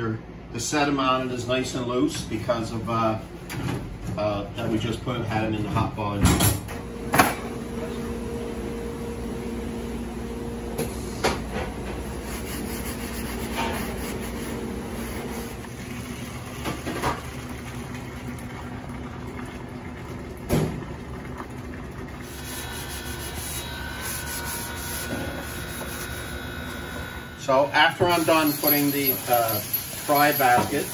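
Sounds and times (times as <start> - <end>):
dishwasher humming: 0.0 - 30.9.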